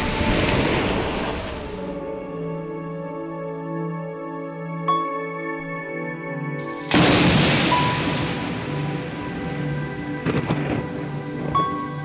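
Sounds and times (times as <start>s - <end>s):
rain falling: 0.0s - 2.0s, 6.7s - 12.0s
ambient new-age music: 0.0s - 12.0s
thunderclap: 6.8s - 12.0s.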